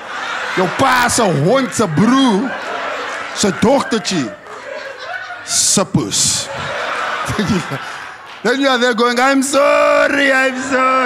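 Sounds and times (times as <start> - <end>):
crowd laughing: 0.0 - 11.0
man speaking into a microphone: 0.6 - 2.5, 3.4 - 4.4, 5.5 - 6.7, 8.4 - 11.0.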